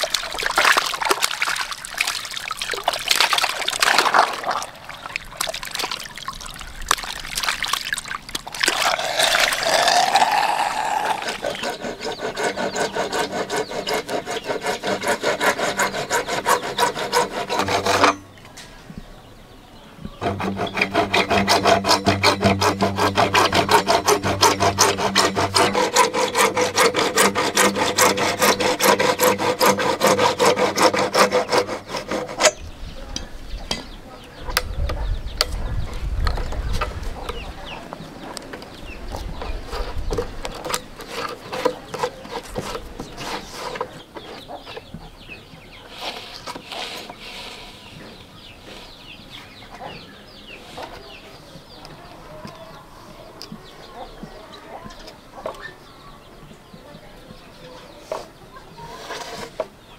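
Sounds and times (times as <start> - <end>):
water splashing into basin: 0.0 - 10.2
hacksaw cutting plastic pipe: 8.8 - 18.3, 20.2 - 32.6, 39.4 - 44.4.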